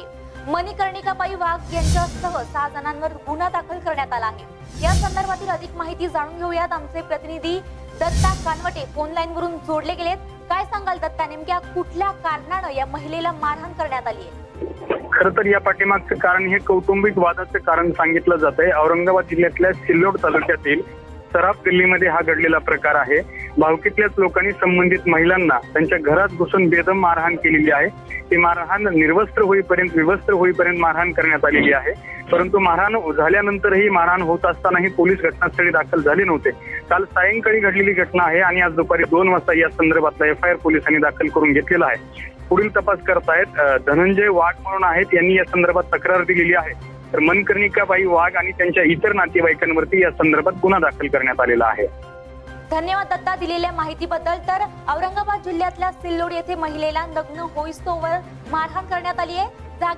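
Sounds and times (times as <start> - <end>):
low background music: 0.0 - 59.9
man speaking over a telephone: 14.6 - 51.9.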